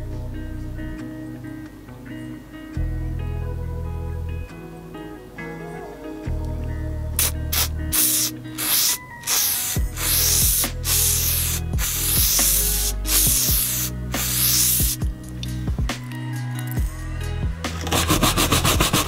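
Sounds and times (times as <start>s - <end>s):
background music: 0.0s - 19.0s
aerosol can spraying: 7.2s - 15.5s.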